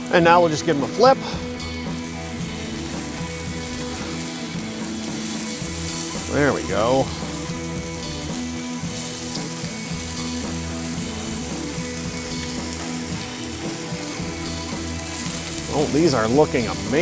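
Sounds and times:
background music: 0:00.0 - 0:17.0
patties sizzling on a griddle: 0:00.0 - 0:17.0.

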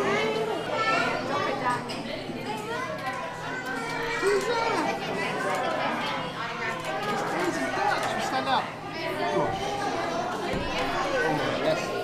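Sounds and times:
child talking: 0:00.0 - 0:01.8, 0:02.4 - 0:07.4
restaurant chatter: 0:00.0 - 0:12.0.

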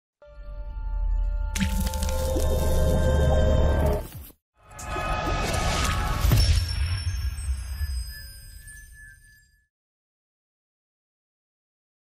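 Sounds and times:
wet splatter sound effect: 0:01.6 - 0:03.0.

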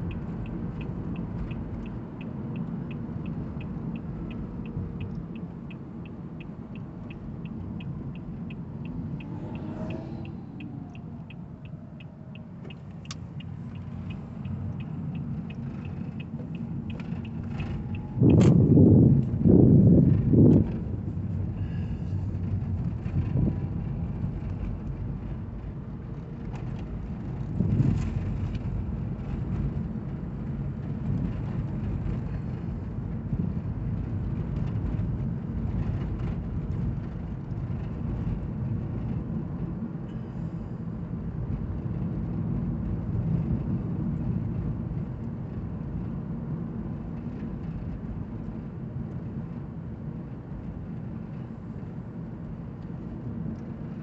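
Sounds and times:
road and tyre noise in car cabin: 0:00.0 - 0:54.0.

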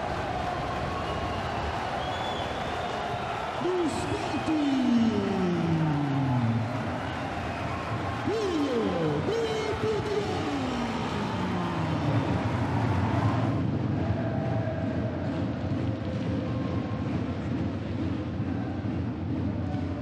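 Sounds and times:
crowd noise in an arena: 0:00.0 - 0:20.0.

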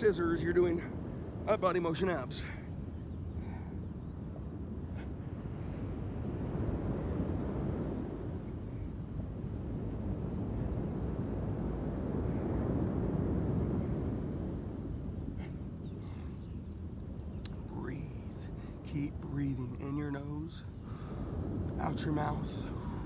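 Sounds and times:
wind: 0:00.0 - 0:23.0.

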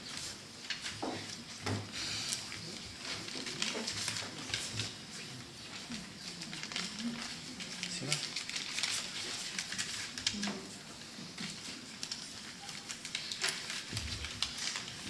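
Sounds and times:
paper rustling and crinkling: 0:00.0 - 0:15.0.

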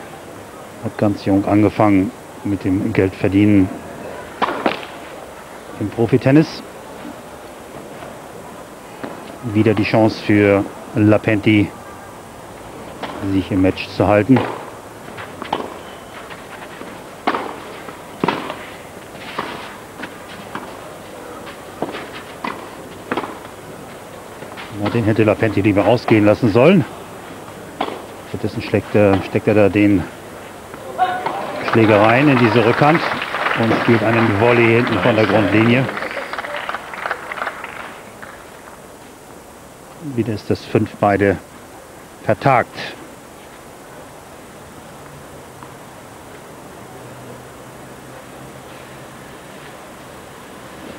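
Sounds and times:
faint outdoor background noise: 0:00.0 - 0:50.9
low stadium background: 0:00.0 - 0:50.9
tennis ball struck by rackets: 0:04.3 - 0:05.0, 0:14.3 - 0:20.8, 0:21.4 - 0:23.6, 0:27.7 - 0:28.2, 0:29.1 - 0:29.4, 0:30.7 - 0:32.4
crowd clapping: 0:31.2 - 0:38.8.

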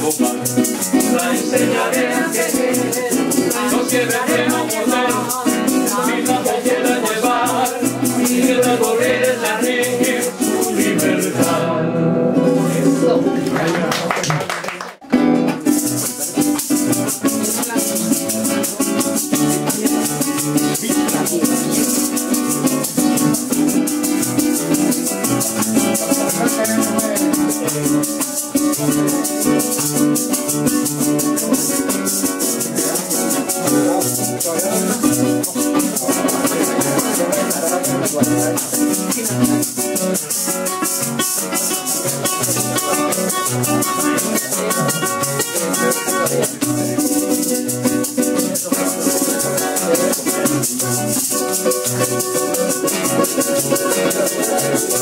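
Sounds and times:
maraca rhythm: 0:00.0 - 0:55.0
nylon-string guitar: 0:00.0 - 0:55.0
strummed cuatro: 0:00.0 - 0:55.0.

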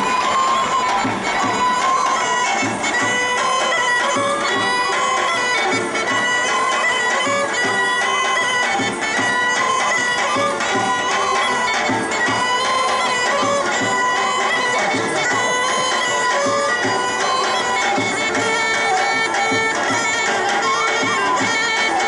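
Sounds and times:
drum beating: 0:00.0 - 0:22.0
wind instrument melody: 0:00.0 - 0:22.0.

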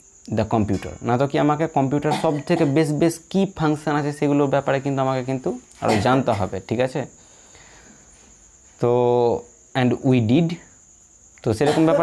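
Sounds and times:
person speaking: 0:00.3 - 0:07.1.

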